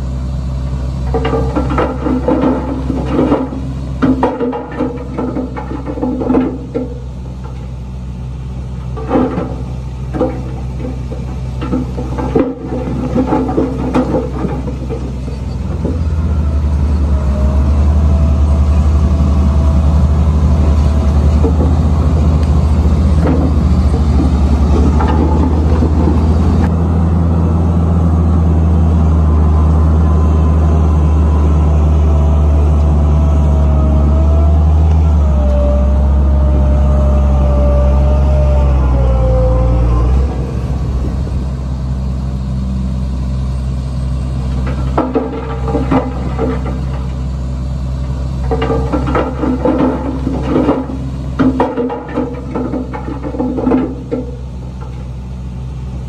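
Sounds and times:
heavy diesel engine running: 0.0 - 56.0
whine sliding in pitch: 22.2 - 42.8.

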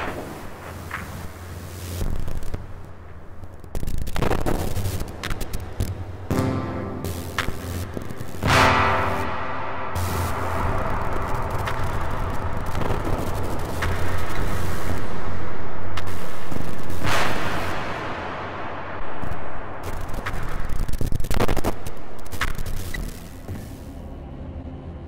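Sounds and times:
rushing noise: 4.0 - 24.3
low electronic drone: 4.2 - 25.0.

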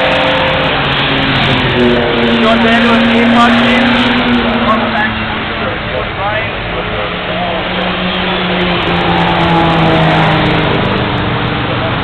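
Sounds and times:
race cars driving past: 0.0 - 12.0.

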